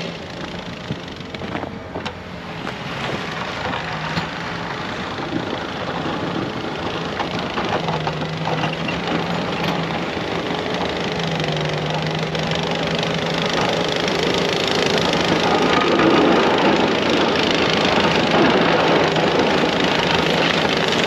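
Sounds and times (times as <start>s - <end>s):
diesel engine under load: 0.0s - 21.0s.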